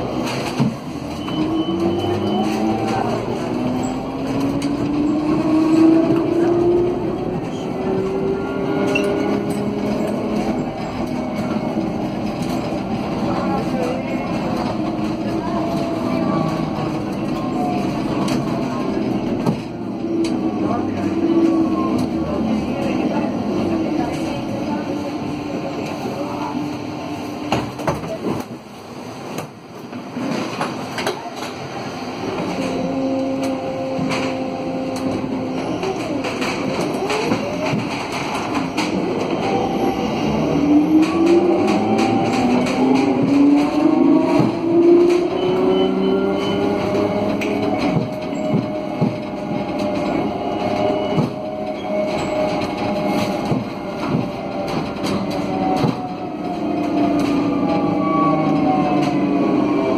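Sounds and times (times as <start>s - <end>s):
road noise: 0.0s - 59.9s.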